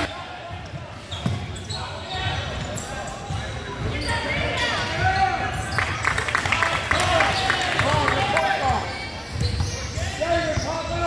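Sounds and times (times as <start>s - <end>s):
raised voices echoing in gym: 0.0s - 11.0s.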